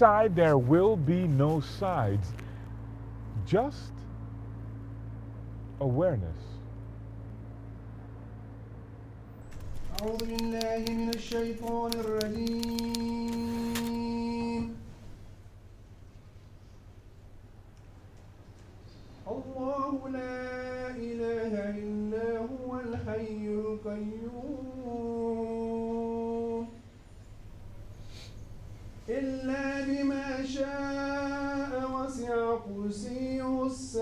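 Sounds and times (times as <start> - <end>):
typewriter key strikes: 9.5 - 13.9.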